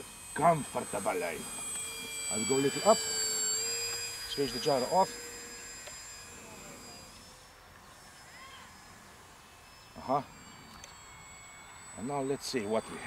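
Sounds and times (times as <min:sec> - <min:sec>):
small electric plane motor whine: 0:00.0 - 0:13.0.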